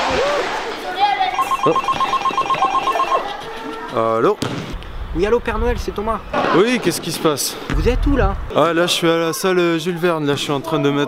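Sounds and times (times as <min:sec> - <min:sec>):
telephone ringing with rapid trill: 0:01.3 - 0:03.6.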